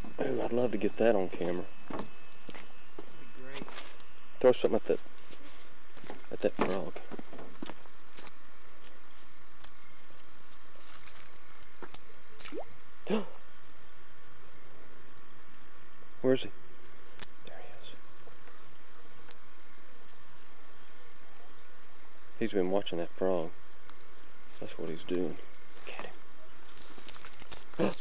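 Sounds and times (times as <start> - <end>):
crickets chirring: 0.0 - 28.0.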